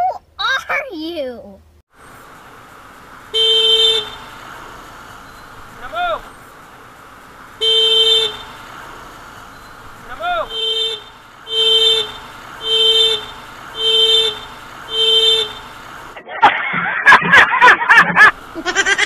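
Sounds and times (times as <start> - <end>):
motorcycle horn beeps: 3.3 - 4.4, 7.6 - 8.6, 10.4 - 15.8.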